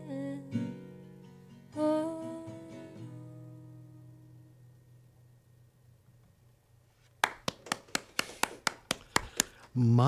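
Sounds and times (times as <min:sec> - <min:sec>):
person clapping: 0:07.2 - 0:09.7.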